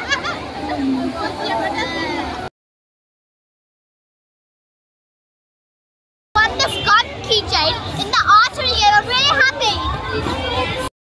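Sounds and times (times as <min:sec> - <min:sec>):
girl talking: 0:06.4 - 0:10.9.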